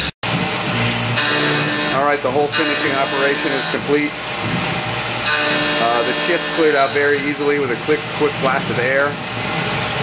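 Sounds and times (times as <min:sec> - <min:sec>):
mill cutting metal hiss: 0:00.0 - 0:10.0
steady machine whine: 0:00.0 - 0:10.0.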